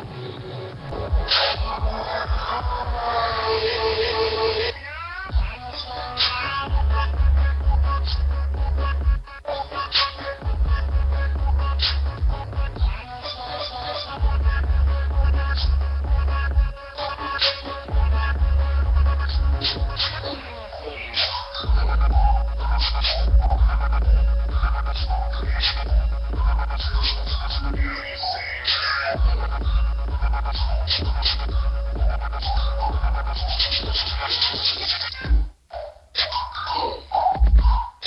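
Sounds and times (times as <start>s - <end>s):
heavy sustained bass line: 0.0s - 4.6s, 6.6s - 9.2s, 10.4s - 13.2s, 14.2s - 20.4s, 21.6s - 28.3s, 29.2s - 34.2s
electronic dance music: 0.0s - 38.0s
kick-drum beat: 0.7s - 3.1s, 5.3s - 5.6s, 6.6s - 9.4s, 10.4s - 13.1s, 14.2s - 16.8s, 17.9s - 20.2s, 21.6s - 28.0s, 29.2s - 34.6s, 35.2s - 35.7s, 37.4s - 37.9s.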